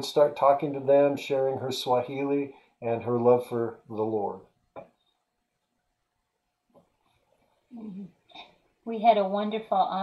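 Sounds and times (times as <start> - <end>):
narrator speaking: 0.0 - 4.4.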